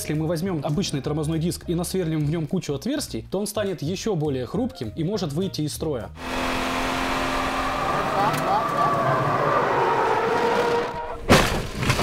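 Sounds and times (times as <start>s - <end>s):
car engine running: 6.2s - 10.8s.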